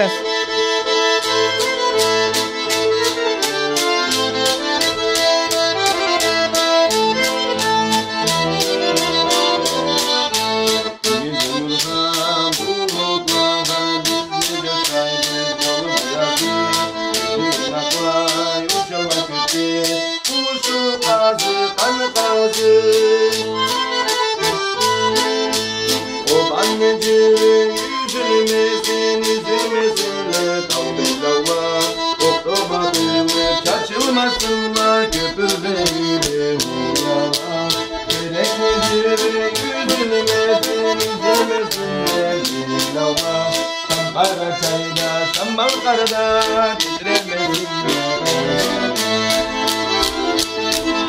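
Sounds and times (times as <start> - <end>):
button accordion playing a tune: 0.0 - 51.0
wooden clapper beat: 0.0 - 51.0.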